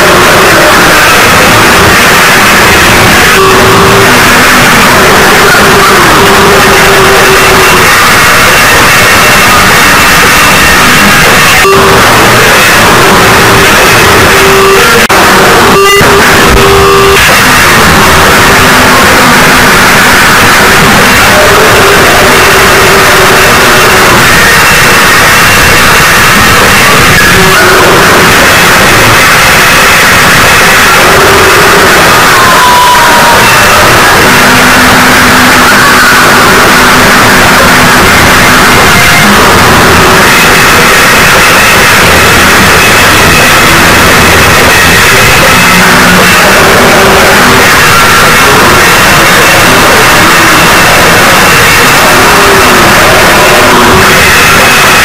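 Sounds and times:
harsh distorted noise music: 0:00.0 - 0:55.0.

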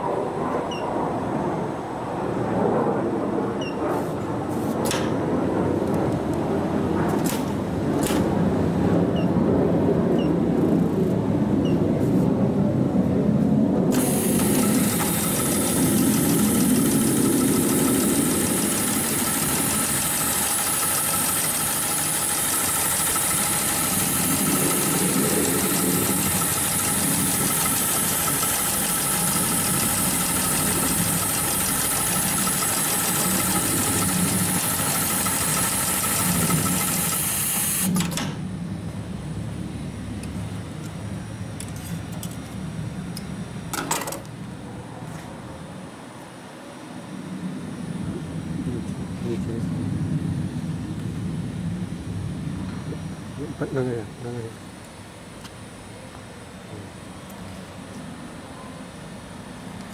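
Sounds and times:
low machine hum: 0:05.2 - 0:59.9
sewing machine stitching: 0:13.9 - 0:38.2.

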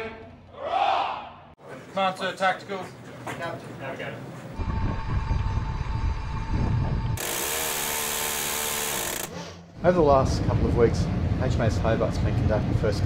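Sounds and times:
low rumble with hum: 0:04.6 - 0:07.2, 0:09.7 - 0:13.0.

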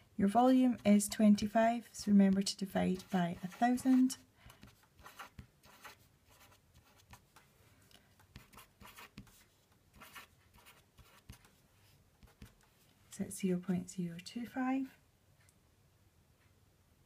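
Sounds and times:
felt-tip pen writing on paper: 0:02.2 - 0:07.4, 0:08.3 - 0:11.6, 0:12.2 - 0:12.7.

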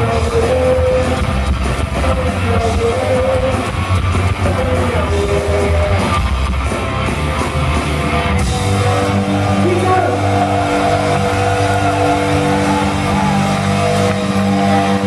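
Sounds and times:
crowd voices: 0:00.0 - 0:15.0
live rock band playing: 0:00.0 - 0:15.0.

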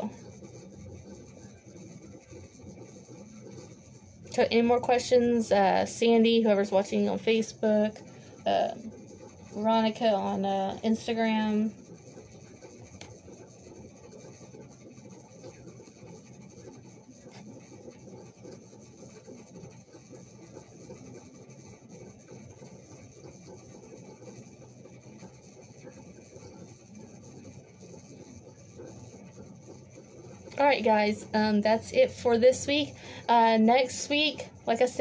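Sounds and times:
low hiss and hum: 0:00.0 - 0:35.0.

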